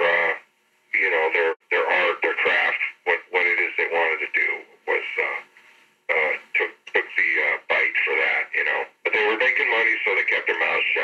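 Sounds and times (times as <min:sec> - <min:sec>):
man talking: 0:00.0 - 0:05.5, 0:06.1 - 0:11.0.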